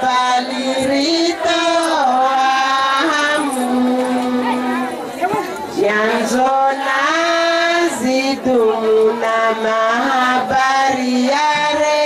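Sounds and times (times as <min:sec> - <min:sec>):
women singing in chorus: 0:00.0 - 0:12.0.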